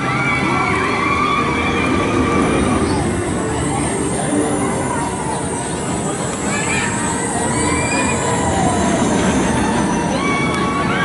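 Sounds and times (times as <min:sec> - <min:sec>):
roller coaster rumbling on track: 0:00.0 - 0:11.0
thin high whine: 0:02.3 - 0:10.9.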